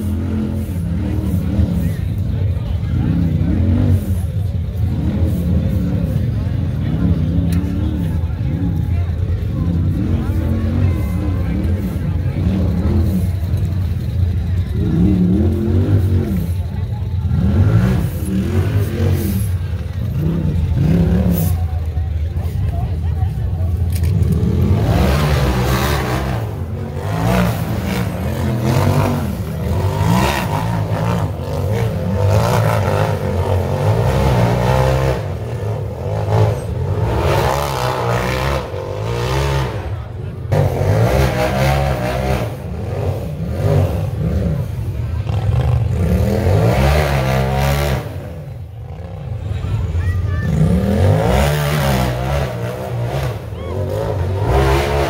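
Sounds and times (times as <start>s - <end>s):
engines revving: 0.0s - 55.0s
spectators chattering: 0.0s - 55.0s.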